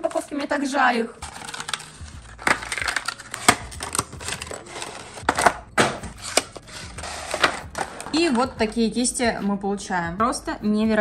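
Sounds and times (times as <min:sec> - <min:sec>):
plastic packaging crinkling: 0:01.2 - 0:05.5.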